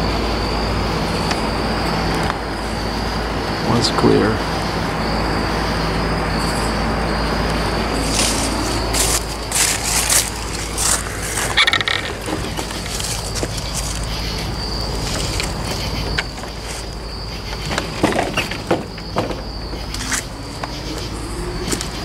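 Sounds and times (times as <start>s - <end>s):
low steady hum: 0.0s - 22.0s
night insects trilling: 0.0s - 22.0s
rustling crunching footsteps: 7.9s - 18.5s.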